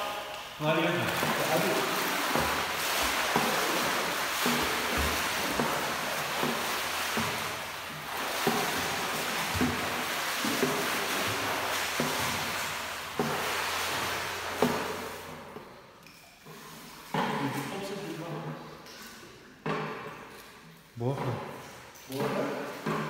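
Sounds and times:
pool water splashing: 0:00.0 - 0:23.0.

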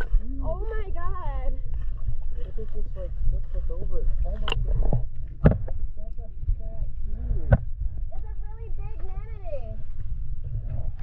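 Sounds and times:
underwater rumble: 0:00.0 - 0:11.0
sharp knocks: 0:05.4 - 0:05.8.

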